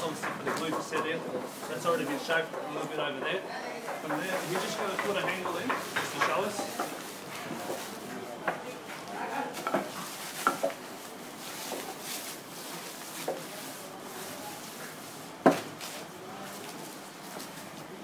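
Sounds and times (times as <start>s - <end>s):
wooden knocks and clicks: 0.0s - 1.8s, 2.5s - 7.0s.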